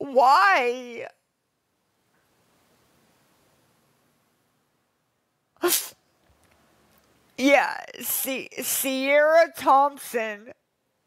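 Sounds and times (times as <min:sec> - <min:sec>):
woman sneezing: 0:05.6 - 0:06.0.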